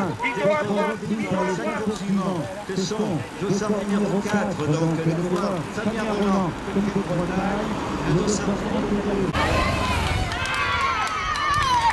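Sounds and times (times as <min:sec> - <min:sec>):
man commentating: 0:00.0 - 0:09.3.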